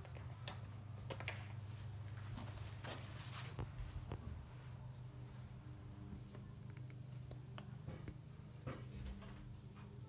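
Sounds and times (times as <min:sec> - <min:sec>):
low hum of blowing air: 0:00.0 - 0:10.0.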